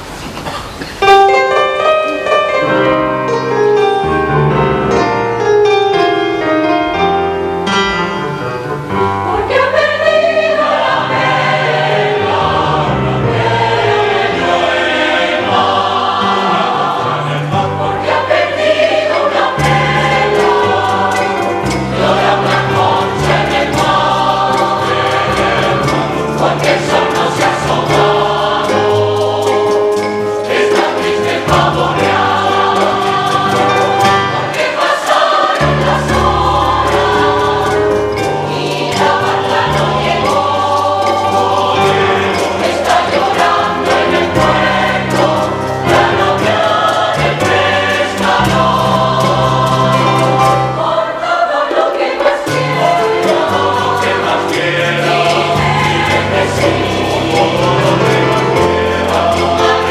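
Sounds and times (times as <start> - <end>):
plucked-string accompaniment: 1.1 - 59.9
mixed choir singing: 6.4 - 59.9.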